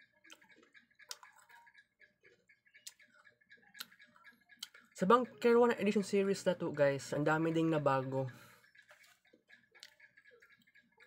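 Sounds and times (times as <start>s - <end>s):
person chewing food clicks: 0.1s - 3.2s, 3.8s - 4.9s, 8.8s - 10.8s.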